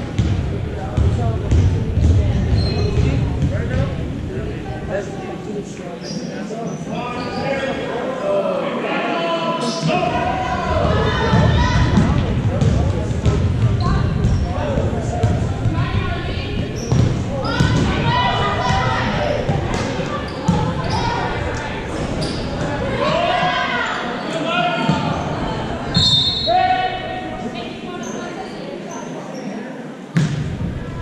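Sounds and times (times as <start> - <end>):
voices calling out: 13.5 - 29.1.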